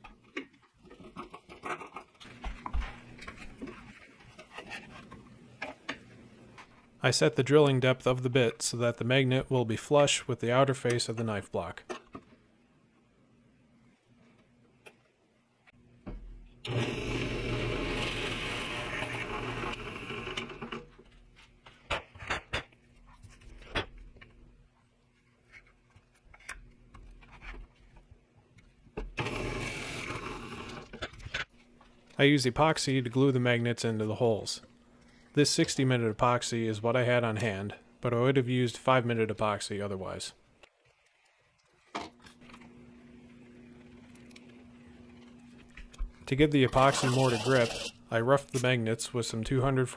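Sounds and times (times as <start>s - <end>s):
drill press boring into wood: 16.6s - 20.8s, 29.2s - 30.9s, 46.8s - 48.0s.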